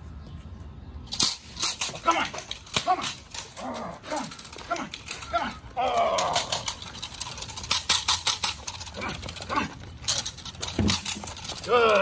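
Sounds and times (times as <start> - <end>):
sharp cracks: 1.1 - 12.0.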